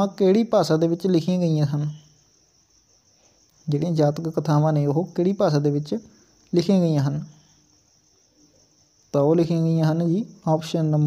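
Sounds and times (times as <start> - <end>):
man's voice: 0.0 - 2.0, 3.7 - 7.3, 9.2 - 11.0.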